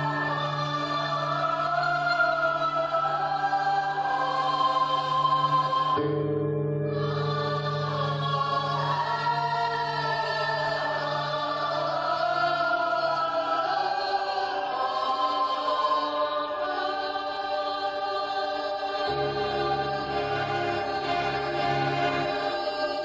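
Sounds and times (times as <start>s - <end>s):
ensemble singing choral passage: 0.0s - 6.2s, 6.8s - 23.0s.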